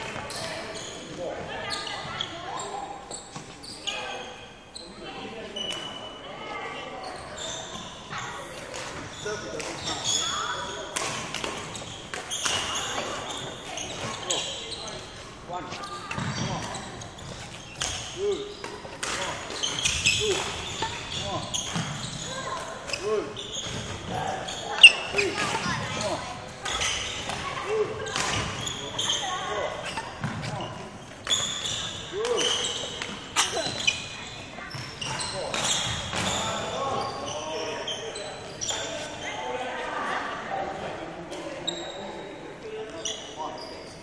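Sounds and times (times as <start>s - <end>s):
shoe squeaks: 0.0s - 39.6s, 41.6s - 44.0s.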